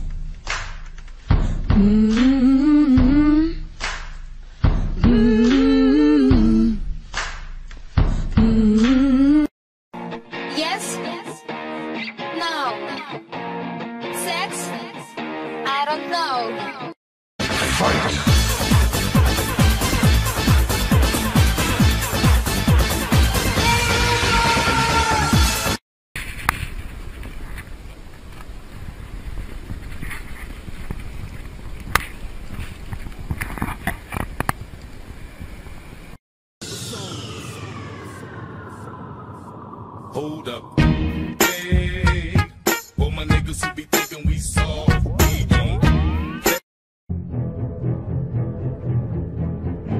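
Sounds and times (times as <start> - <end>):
deep bass: 0.0 - 9.5, 17.5 - 24.8, 40.1 - 43.6
person humming a long note: 1.7 - 3.6, 5.0 - 6.8
wind rumbling on microphone: 26.2 - 41.1.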